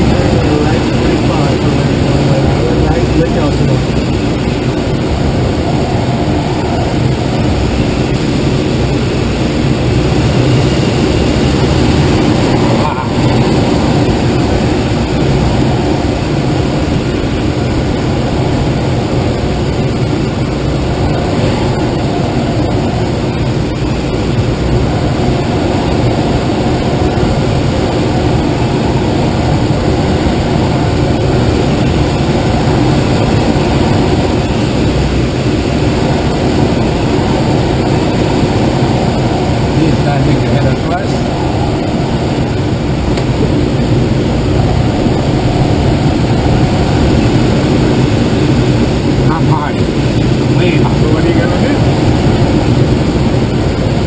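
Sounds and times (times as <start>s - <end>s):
air rushing over canopy: 0.0s - 54.0s.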